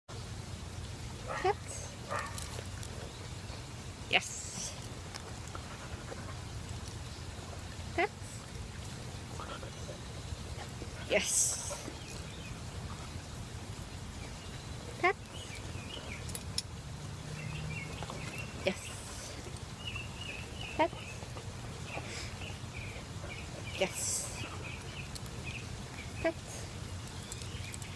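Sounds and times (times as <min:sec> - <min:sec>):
small birds chirping: 0:08.4 - 0:27.9
person speaking: 0:11.0 - 0:11.9, 0:23.8 - 0:24.5.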